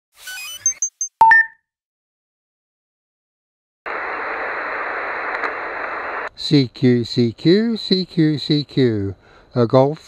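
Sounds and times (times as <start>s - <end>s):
radio static hiss: 3.9s - 7.0s.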